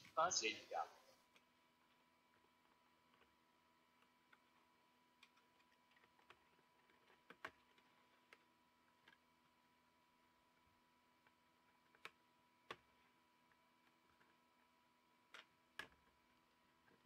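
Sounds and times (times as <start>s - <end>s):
plastic keyboard clicks and taps: 5.2s - 9.2s, 11.8s - 12.9s, 15.3s - 16.1s.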